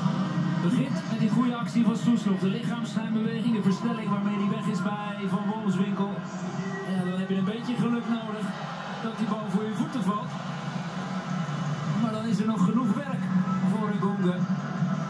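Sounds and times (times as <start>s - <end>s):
stadium crowd background: 0.0s - 15.0s
man commentating: 0.6s - 6.3s, 6.9s - 10.3s.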